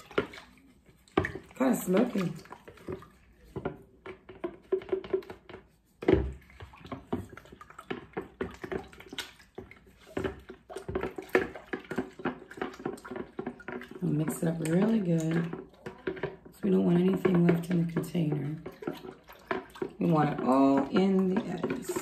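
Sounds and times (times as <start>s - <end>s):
spoon scraping plastic pitcher: 0.0s - 22.0s.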